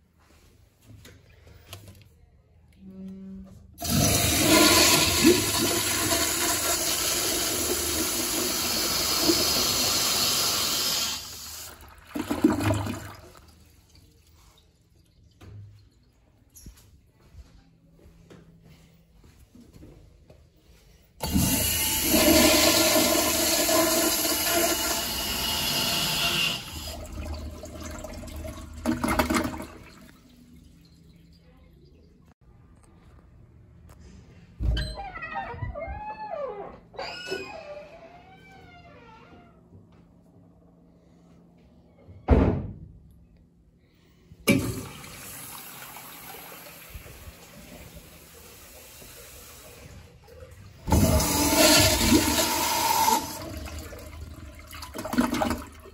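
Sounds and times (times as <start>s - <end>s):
toilet flushing: 3.8s - 15.8s, 21.2s - 31.4s, 44.4s - 55.9s.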